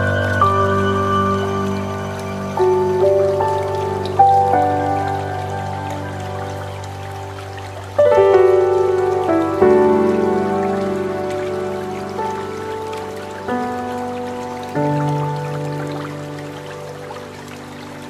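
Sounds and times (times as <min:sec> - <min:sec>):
running water hiss: 0:00.0 - 0:18.0
slow relaxation music chords: 0:00.0 - 0:18.0.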